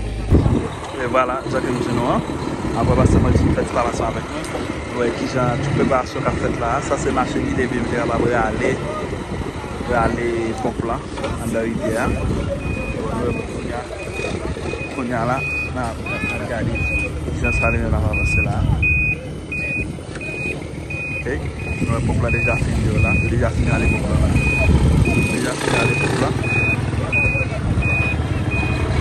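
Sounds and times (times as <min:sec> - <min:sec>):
truck engine rumble: 0:00.0 - 0:29.0
truck reversing alarm beeping: 0:00.0 - 0:29.0.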